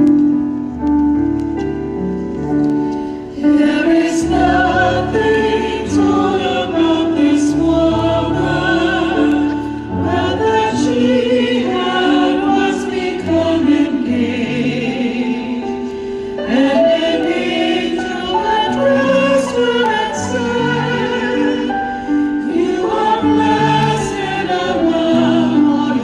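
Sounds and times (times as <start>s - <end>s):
choir singing sustained notes: 3.3s - 26.0s.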